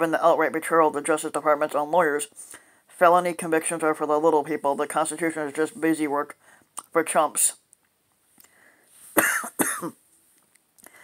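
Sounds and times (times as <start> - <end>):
faint intake of breath: 2.4 - 2.9, 6.4 - 6.7, 8.4 - 9.2
man coughing: 9.2 - 10.0.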